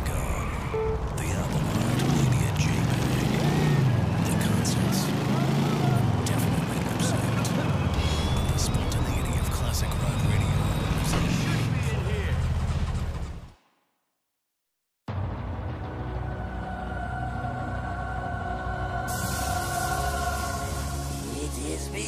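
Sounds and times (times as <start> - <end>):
motorcycle engine revving: 1.1 - 13.5.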